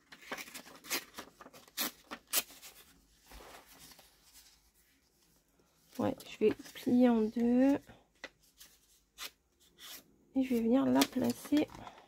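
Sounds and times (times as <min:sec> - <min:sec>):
thin paper rustling: 0:00.0 - 0:05.3.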